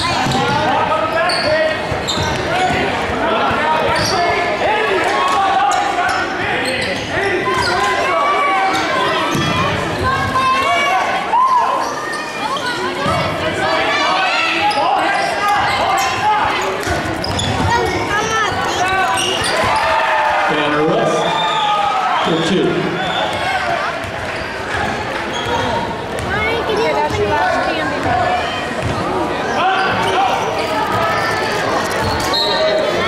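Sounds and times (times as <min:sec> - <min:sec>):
sneakers squeaking: 0:00.0 - 0:04.5, 0:05.6 - 0:10.6, 0:11.5 - 0:13.4, 0:14.3 - 0:20.2, 0:21.2 - 0:33.0
crowd shouting: 0:02.4 - 0:33.0.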